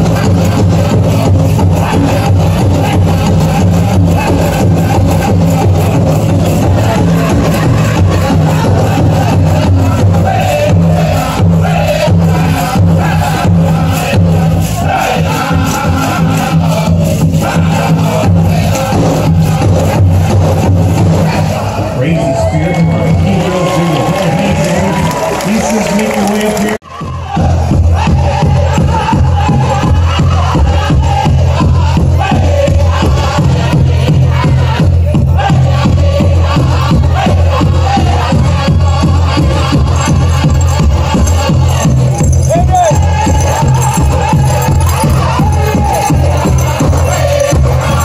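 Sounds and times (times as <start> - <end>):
steady powwow drumbeat: 0.0 - 25.1, 26.8 - 48.0
voices singing: 0.0 - 48.0.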